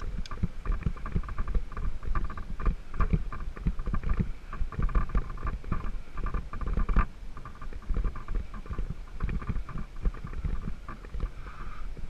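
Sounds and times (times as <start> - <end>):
mountain bike rattling on dirt: 0.0 - 11.4.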